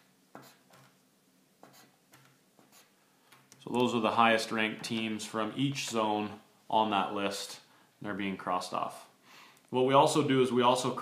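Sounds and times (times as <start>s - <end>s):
pen scratching on paper: 0.3s - 0.9s, 1.6s - 2.0s, 2.6s - 3.0s.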